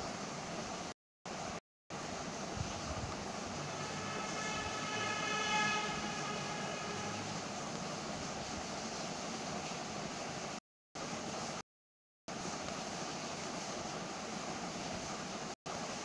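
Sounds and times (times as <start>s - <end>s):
steady background noise: 0.0s - 11.6s
faint pitched tone: 3.5s - 7.6s.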